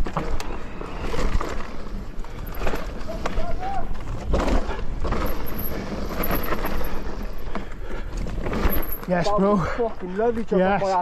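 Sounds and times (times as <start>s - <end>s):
mountain bike clattering: 0.0s - 11.0s.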